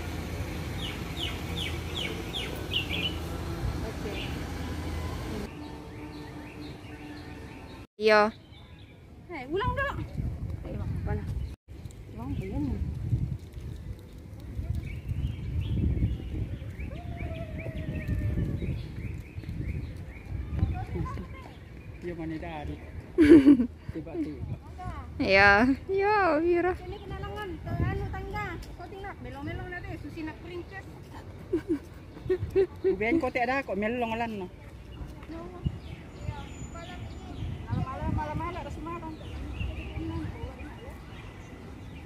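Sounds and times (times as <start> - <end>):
bird chirping: 0.7 - 3.4.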